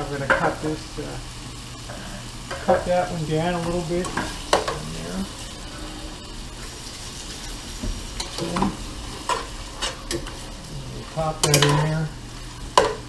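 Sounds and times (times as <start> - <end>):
meat sizzling in a pot: 0.0 - 13.0
spoon scraping and knocking pot: 11.4 - 11.9.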